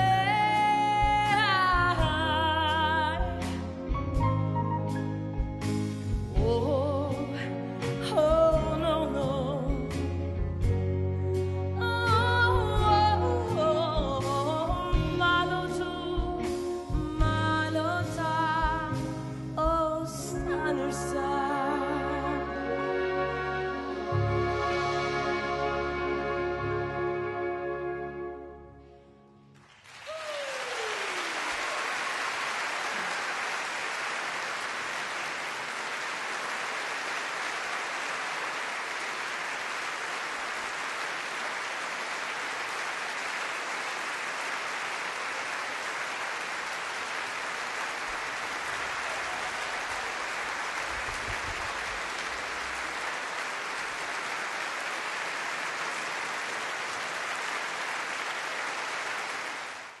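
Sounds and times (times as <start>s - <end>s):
audience applauding: 29.6s - 60.0s.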